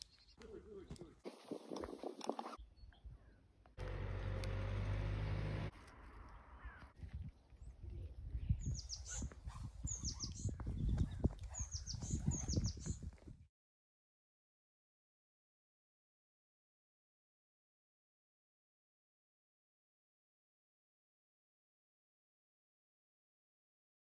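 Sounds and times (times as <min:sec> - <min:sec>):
small bird chirping: 0:06.0 - 0:13.1.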